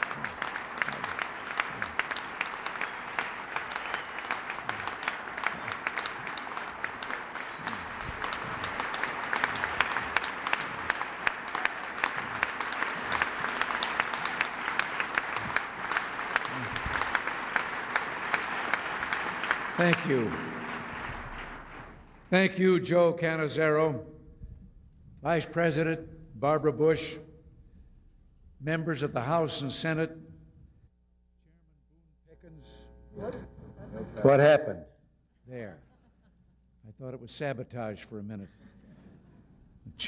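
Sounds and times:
large audience applauding: 0.0s - 22.6s.

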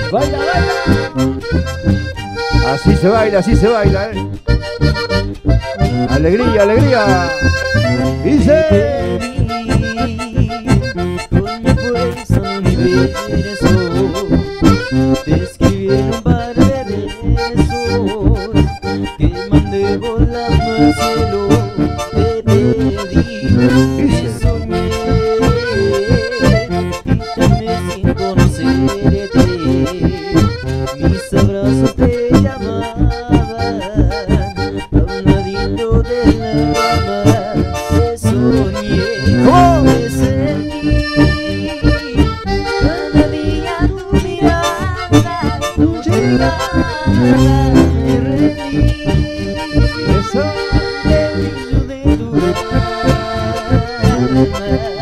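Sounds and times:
live band with accordions: 0.0s - 55.0s.

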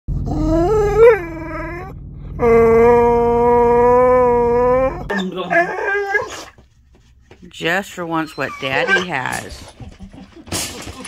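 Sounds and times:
dog whining: 0.1s - 6.6s, 8.2s - 11.0s
dog whimpering: 0.2s - 6.6s, 8.1s - 10.6s.

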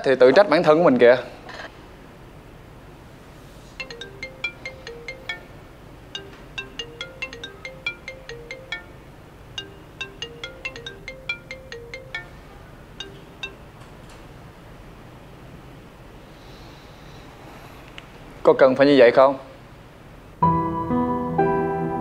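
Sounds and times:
phone ringtone melody: 3.8s - 13.8s.

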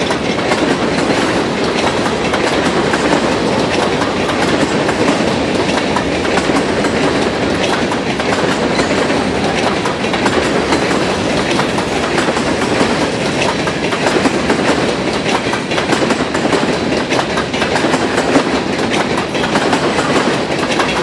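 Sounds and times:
train wheels rumbling on rail: 0.0s - 21.0s.

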